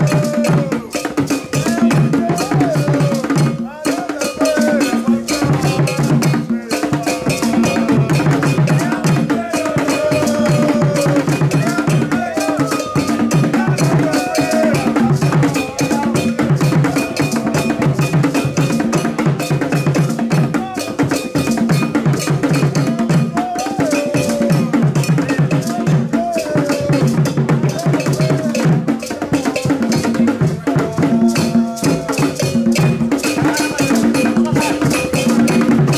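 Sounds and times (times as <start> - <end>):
hand drums beating fast rhythm: 0.0 - 35.9.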